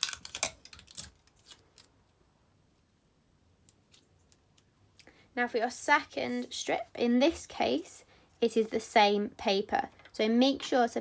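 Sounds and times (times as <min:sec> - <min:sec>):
sticky tape pulled and torn: 0:00.0 - 0:01.9.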